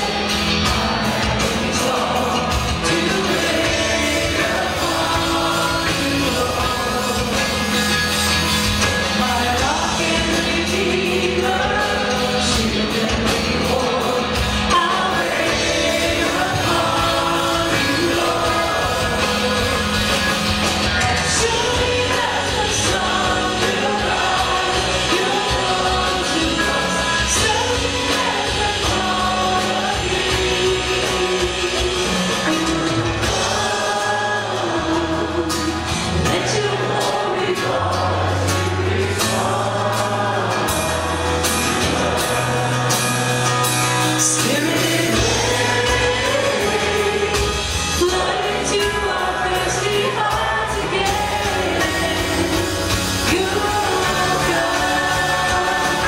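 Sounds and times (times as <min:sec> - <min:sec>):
backing singers: 0:00.0 - 0:56.0
bass guitar: 0:00.0 - 0:56.0
drums: 0:00.0 - 0:56.0
electric and acoustic guitars: 0:00.0 - 0:56.0
keyboard: 0:00.0 - 0:56.0
male lead singer: 0:00.0 - 0:56.0.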